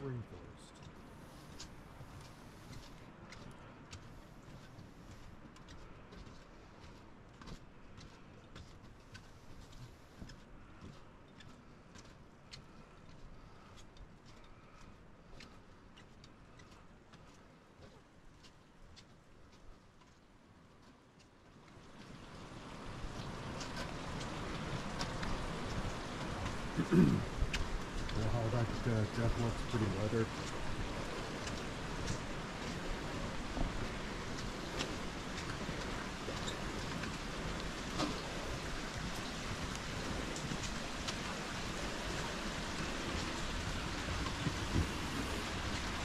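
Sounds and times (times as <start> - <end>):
faint drips and ticks: 0.0 - 46.0
running water rushing: 21.7 - 46.0.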